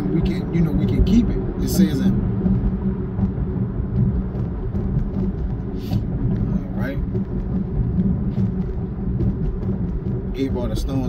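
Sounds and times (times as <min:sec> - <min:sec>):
car road noise rumble: 0:00.0 - 0:11.0.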